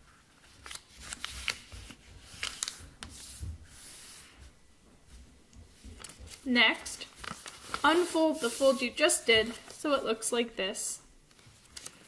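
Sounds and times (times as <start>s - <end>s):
paper crackling: 0.2s - 4.0s, 5.8s - 9.9s, 11.3s - 12.0s
fingers rubbing along paper fold: 0.4s - 4.3s, 5.8s - 9.8s.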